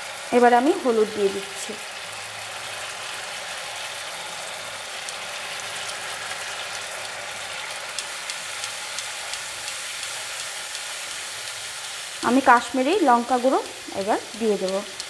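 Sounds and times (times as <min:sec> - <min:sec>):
spice paste sizzling in oil: 0:00.0 - 0:15.0.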